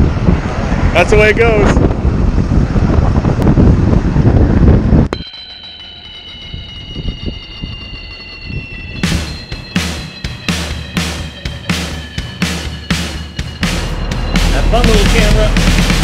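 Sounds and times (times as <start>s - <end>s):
wind on microphone: 0.0s - 5.2s, 6.4s - 9.1s
music beat: 5.1s - 16.0s
music with held high tones: 5.1s - 16.0s.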